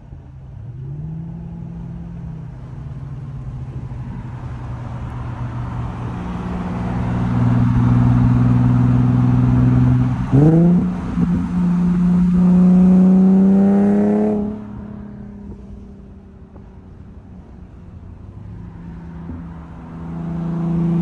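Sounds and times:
car exhaust drone: 0:00.0 - 0:21.0.

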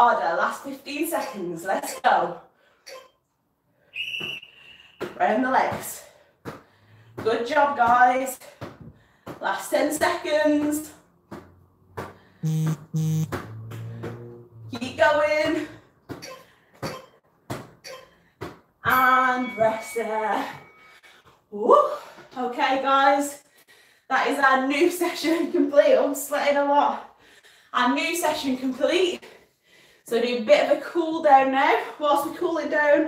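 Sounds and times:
ball thudding against body: 0:10.5 - 0:12.2, 0:13.2 - 0:14.3
high electronic beep: 0:12.4 - 0:13.4.

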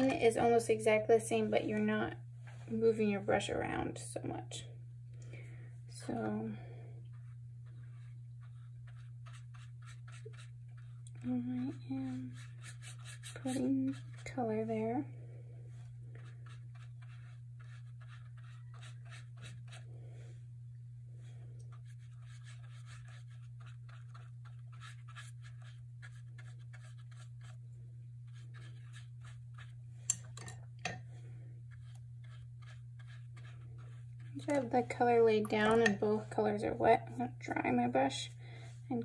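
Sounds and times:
steady low hum: 0:00.0 - 0:39.0
paintbrush scrubbing on paper: 0:07.0 - 0:14.6, 0:15.7 - 0:19.9, 0:21.2 - 0:29.9, 0:31.6 - 0:35.3.

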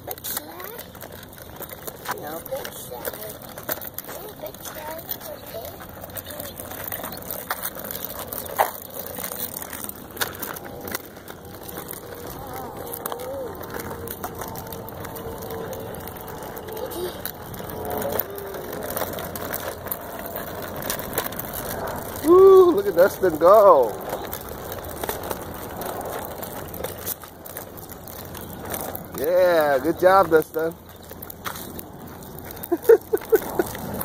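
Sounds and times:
wheels clicking over bumps: 0:00.0 - 0:34.0
wheels rumbling on rough asphalt: 0:00.0 - 0:34.0.

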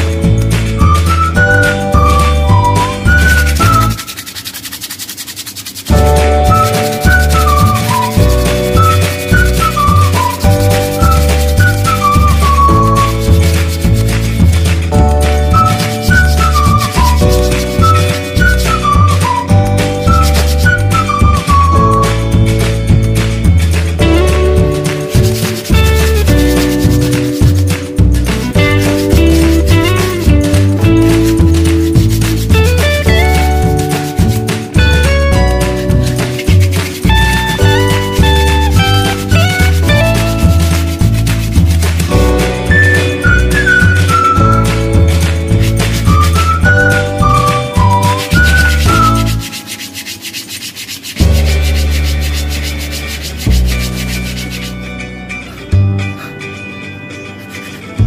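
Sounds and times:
sandpaper rubbing on wood: 0:02.8 - 0:21.2, 0:24.9 - 0:42.5, 0:44.6 - 0:54.8
background music with bass beat: 0:05.9 - 0:50.2, 0:51.2 - 0:56.5.

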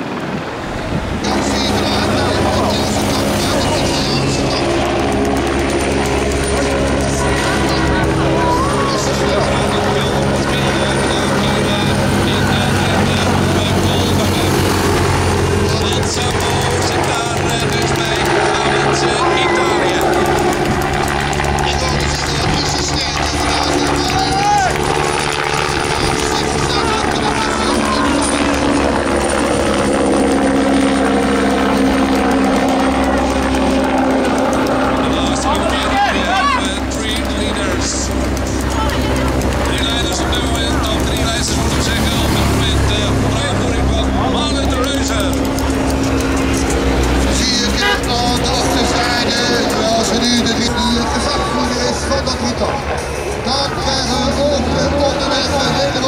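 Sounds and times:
helicopter drone overhead: 0:00.0 - 0:56.0
race vehicle engines: 0:00.0 - 0:56.0
scattered voices: 0:00.0 - 0:56.0.

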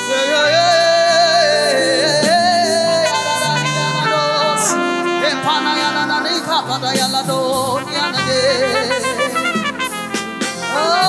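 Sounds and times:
band accompaniment: 0:00.0 - 0:11.0
singing with wide vibrato: 0:00.0 - 0:11.0.

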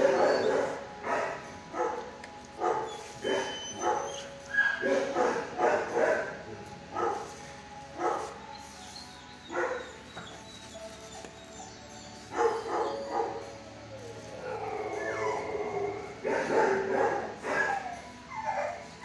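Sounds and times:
dog whining: 0:00.0 - 0:01.0, 0:02.6 - 0:05.4, 0:08.0 - 0:19.0
dogs barking and yelping: 0:00.0 - 0:19.0.

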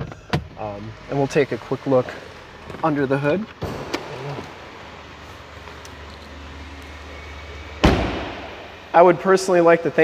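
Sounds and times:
car engine idling: 0:00.0 - 0:10.0
car door shutting: 0:02.6 - 0:04.9, 0:05.7 - 0:08.7.

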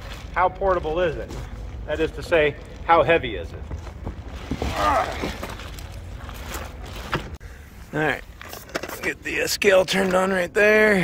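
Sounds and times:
plastic bag crinkling: 0:03.9 - 0:07.1.

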